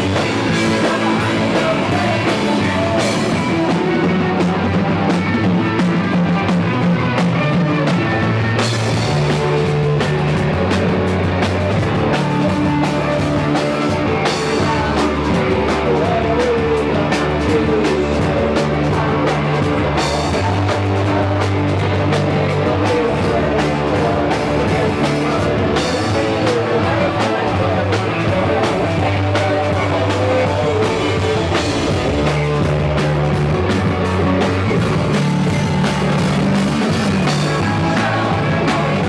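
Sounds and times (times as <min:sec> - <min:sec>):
drum kit: 0:00.0 - 0:39.0
electric bass: 0:00.0 - 0:39.0
electric guitar: 0:00.0 - 0:39.0.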